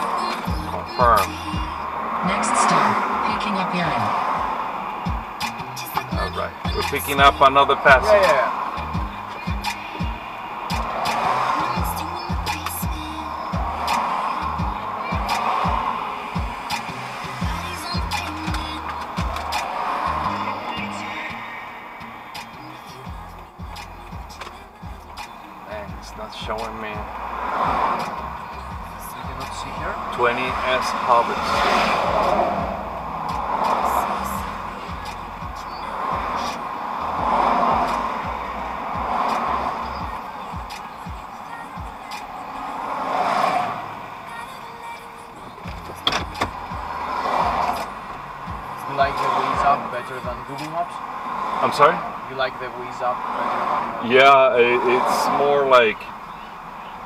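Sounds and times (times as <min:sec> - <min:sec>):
music with bass beat: 0:00.0 - 0:02.8, 0:03.9 - 0:42.4, 0:45.5 - 0:51.2
oncoming traffic passing: 0:00.0 - 0:57.0
road noise inside moving car: 0:00.0 - 0:57.0.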